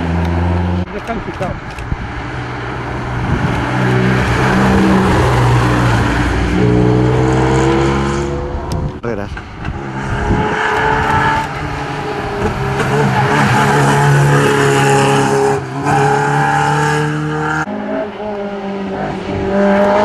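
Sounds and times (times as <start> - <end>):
rally car engines revving: 0.0 - 20.0
rally car engine accelerating: 3.1 - 20.0.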